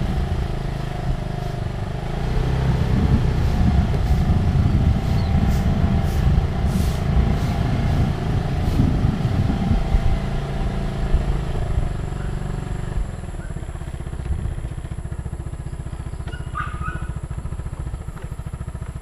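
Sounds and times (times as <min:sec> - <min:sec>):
wind rumbling on microphone: 0:00.0 - 0:13.6
small vehicle engine running: 0:00.0 - 0:19.0.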